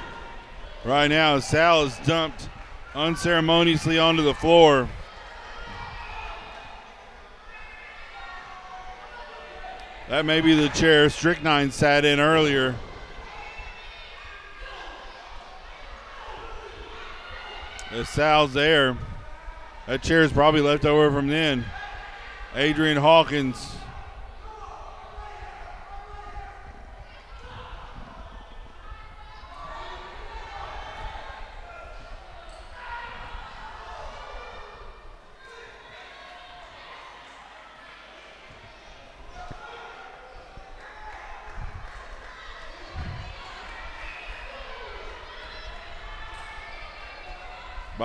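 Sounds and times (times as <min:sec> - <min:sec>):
spectators talking and calling out: 0:00.0 - 0:48.0.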